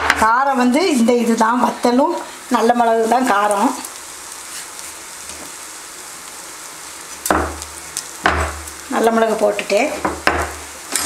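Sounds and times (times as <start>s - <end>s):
food sizzling in oil: 0.0s - 11.0s.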